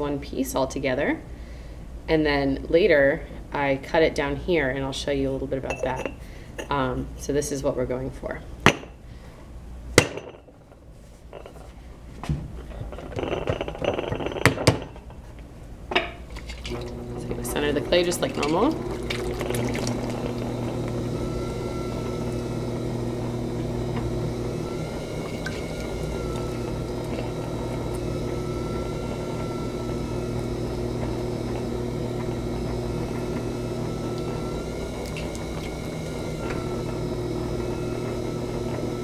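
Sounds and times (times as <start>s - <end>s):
pottery wheel humming: 2.1s - 39.0s.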